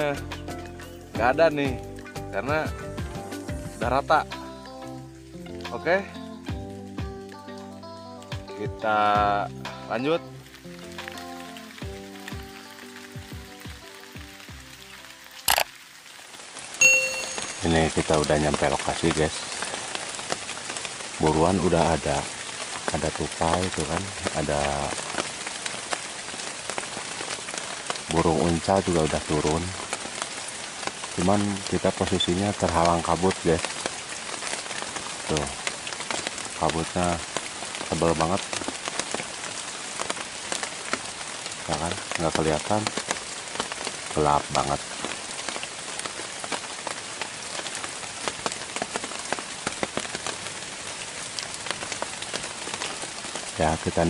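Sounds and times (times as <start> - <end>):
rain hissing on foliage: 0.0 - 54.0
drops ticking on leaves: 10.4 - 54.0.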